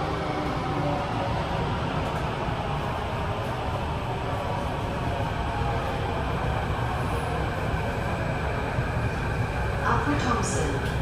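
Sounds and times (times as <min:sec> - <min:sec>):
metro train rumbling: 0:00.0 - 0:11.0.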